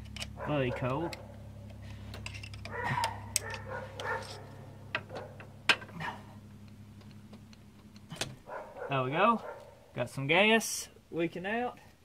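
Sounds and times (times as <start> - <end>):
low hum: 0.0 - 10.3.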